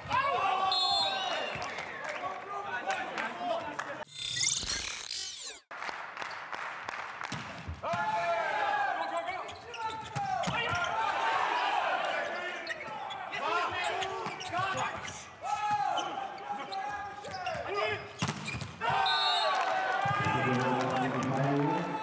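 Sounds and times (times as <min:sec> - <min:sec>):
players shouting: 0:07.9 - 0:14.8, 0:18.8 - 0:22.0
shoes squeaking on court floor: 0:09.0 - 0:10.9, 0:12.2 - 0:18.8
players cheering: 0:18.8 - 0:22.0.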